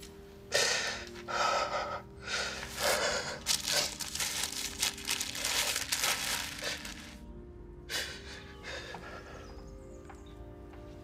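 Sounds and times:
soft sustained music: 0.0 - 11.0.

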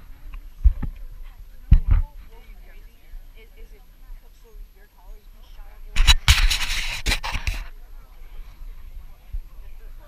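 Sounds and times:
faint chatter: 0.0 - 10.0.

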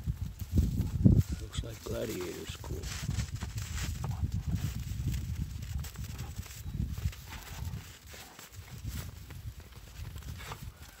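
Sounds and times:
scuffling in snow: 0.1 - 11.0.

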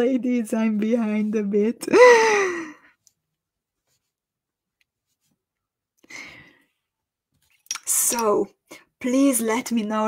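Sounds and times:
woman sighing: 1.9 - 3.0.

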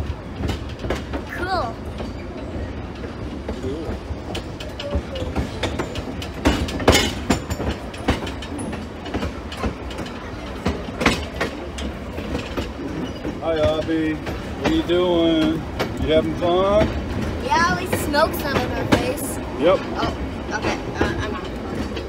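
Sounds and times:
train wheels rumbling on track: 0.0 - 22.0
wheels clicking and clanking: 0.0 - 22.0.

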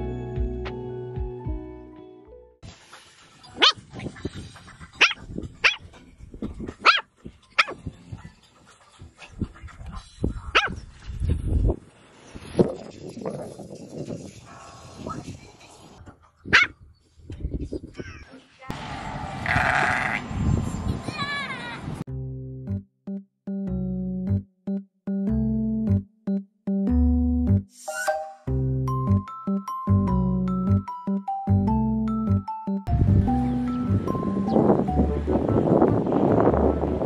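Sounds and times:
puppy yapping: 3.6 - 3.8, 5.0 - 5.8, 6.8 - 7.8, 16.5 - 16.7.

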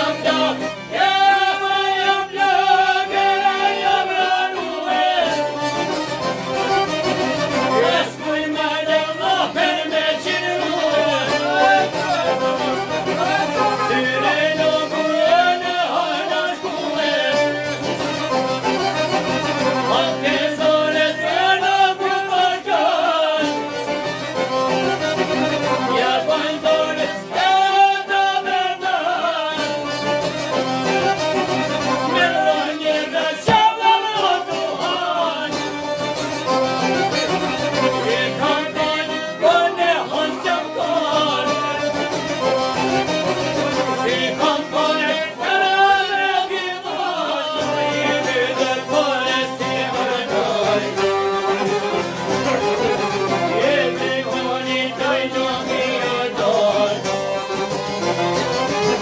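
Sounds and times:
men singing together: 0.0 - 5.7, 7.6 - 18.2, 19.4 - 24.1, 25.0 - 30.1, 31.6 - 36.0, 36.8 - 51.9, 52.6 - 57.4
accordion: 0.0 - 59.0
plucked lutes: 0.0 - 59.0
violin: 0.0 - 59.0
man singing wavering melody: 7.7 - 17.6.

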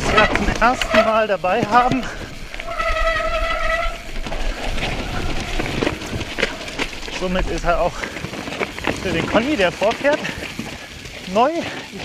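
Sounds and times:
bike disc brake squealing: 0.0 - 7.2
bike rattling and knocking: 0.0 - 12.0
wind rumble on microphone: 1.6 - 9.6.

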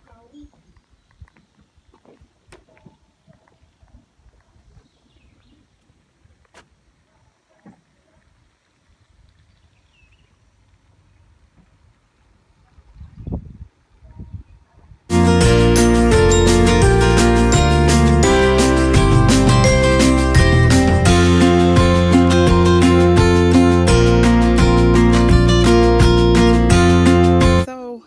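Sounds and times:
wind noise on microphone: 0.0 - 6.5, 12.6 - 15.1.

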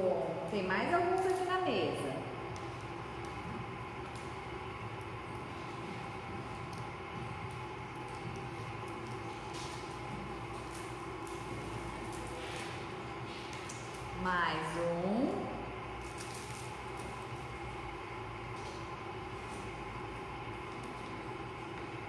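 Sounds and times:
steady background hum: 0.0 - 22.0.

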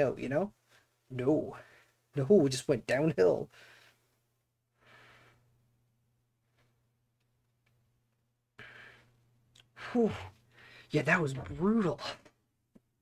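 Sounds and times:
man saying whew: 9.8 - 10.3.

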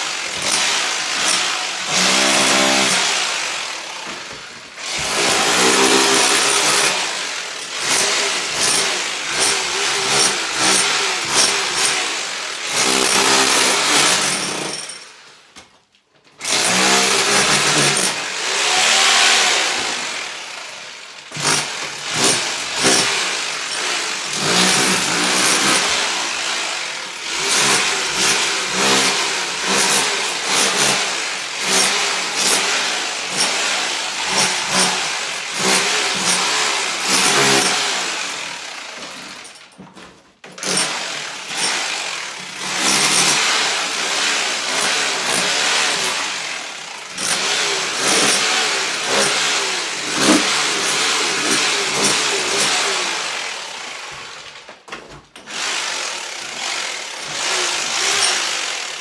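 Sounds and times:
power tool chipping plaster: 0.0 - 15.2, 16.3 - 59.0.

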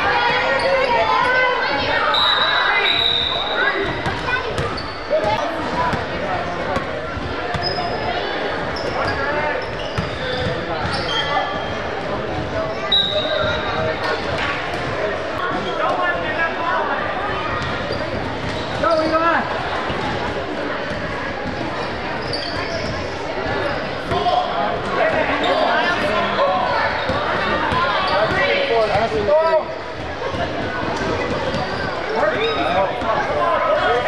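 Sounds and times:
sneakers squeaking: 0.0 - 16.2, 17.3 - 34.0
voices of players and spectators: 0.0 - 34.0.

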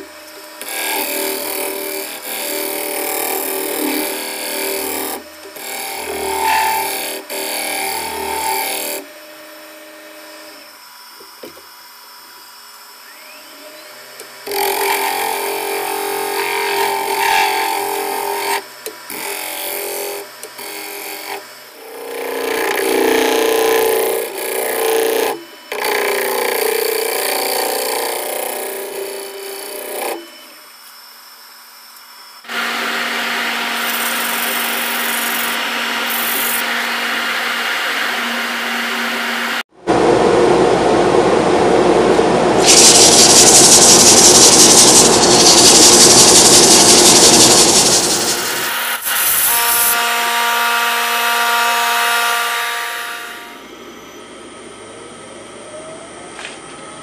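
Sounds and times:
wood lathe running: 0.6 - 9.0, 32.5 - 39.6, 42.6 - 49.9
gouge shaving wood: 42.6 - 48.8.

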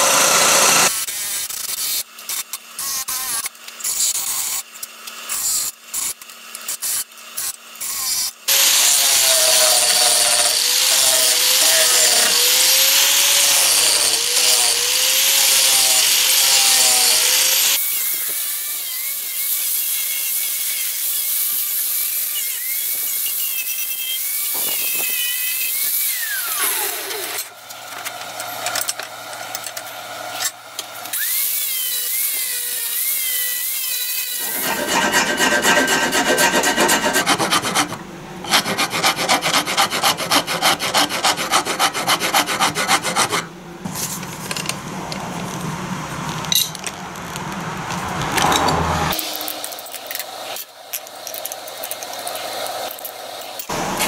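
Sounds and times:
angle grinder sanding wood: 0.0 - 1.2, 7.8 - 20.2, 31.2 - 43.5
coarse pulsing grinding: 34.4 - 43.5.

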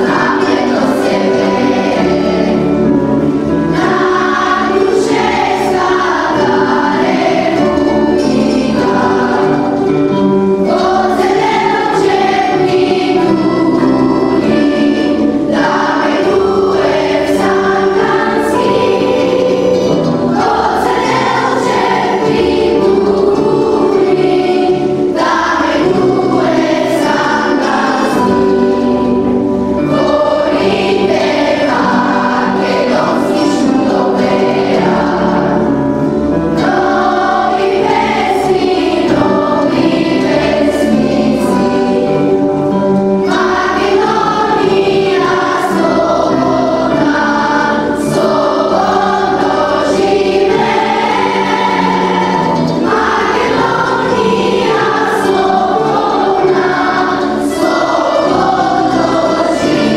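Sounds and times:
children's choir singing: 0.0 - 59.9
plucked string instruments: 0.0 - 59.9.

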